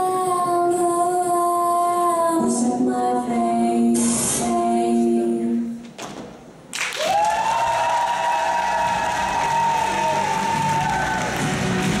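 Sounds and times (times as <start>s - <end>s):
stage dance music: 6.4s - 12.0s
audience clapping: 6.7s - 12.0s
high long-held cheers: 7.0s - 11.9s.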